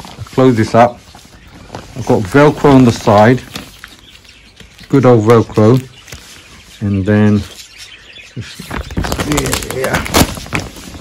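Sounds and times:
plastic sheet rustling and crackling: 0.0 - 6.7, 8.4 - 11.0.

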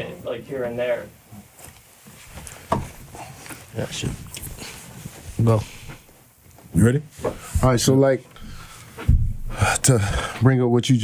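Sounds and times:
short thump: 9.0 - 9.5.

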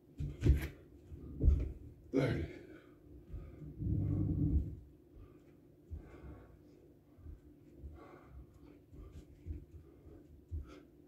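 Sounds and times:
man breathing hard: 1.3 - 11.0.

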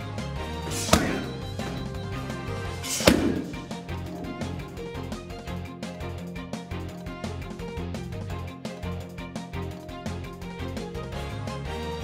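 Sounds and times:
background music: 0.0 - 12.0
punch smacking focus mitt: 0.7 - 2.0, 2.8 - 4.7.

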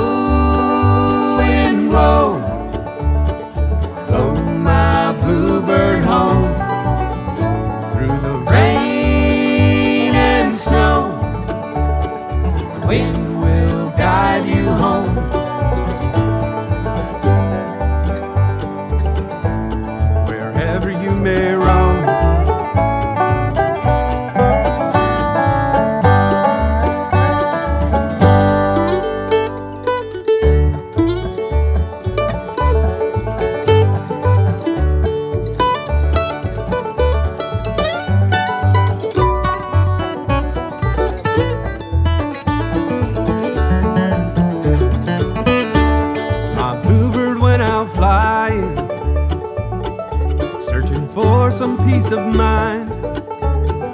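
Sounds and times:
acoustic guitar: 0.0 - 53.9
banjo: 0.0 - 53.9
bass beat: 0.0 - 53.9.

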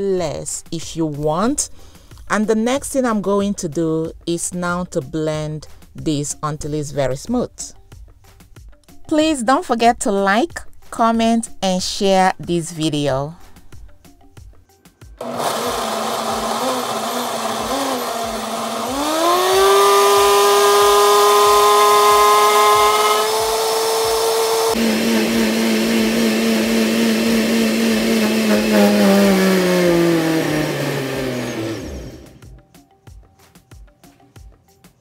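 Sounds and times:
blender motor whining: 15.2 - 32.6.

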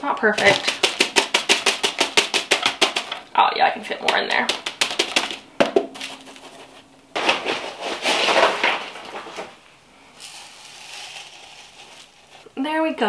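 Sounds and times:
granules rattling poured into pot: 0.2 - 3.3, 10.2 - 12.6.

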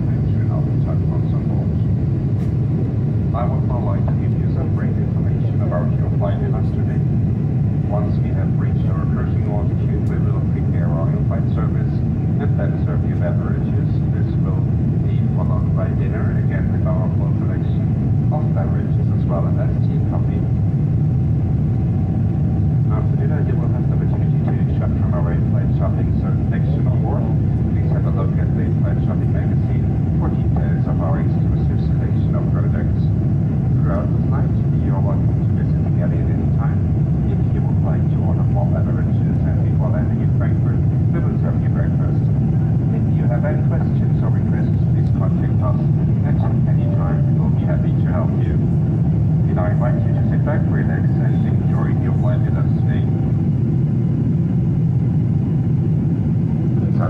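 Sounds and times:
airplane cabin engine rumble: 0.0 - 57.0.

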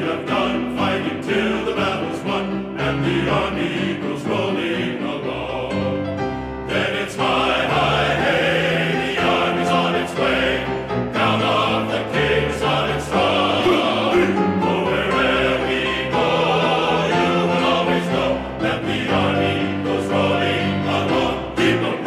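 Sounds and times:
choir singing sustained chords: 0.0 - 22.0.

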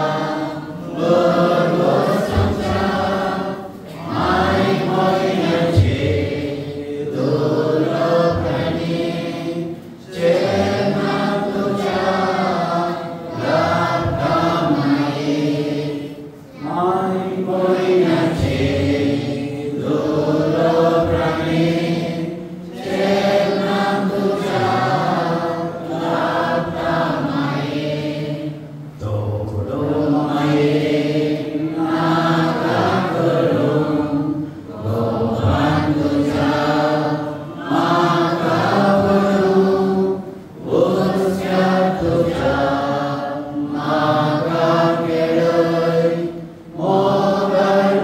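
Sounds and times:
congregation singing a hymn: 0.0 - 48.0.

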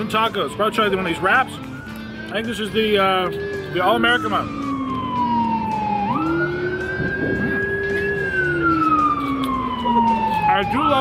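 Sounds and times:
emergency vehicle siren wailing: 0.0 - 11.0.

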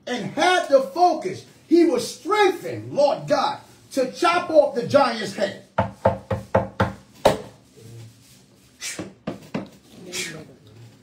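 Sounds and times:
hand knocking on tabletop: 5.8 - 7.6.

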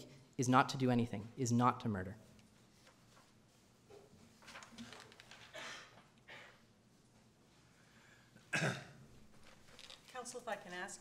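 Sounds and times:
person coughing: 5.5 - 6.6, 8.5 - 9.0.

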